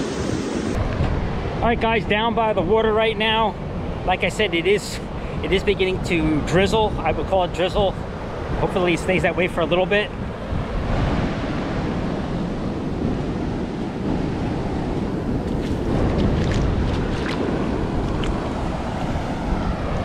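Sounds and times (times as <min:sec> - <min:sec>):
ocean surf washing up beach: 0:00.0 - 0:20.0
wind buffeting microphone: 0:00.0 - 0:20.0
shoe splashing in shallow water: 0:15.4 - 0:18.4.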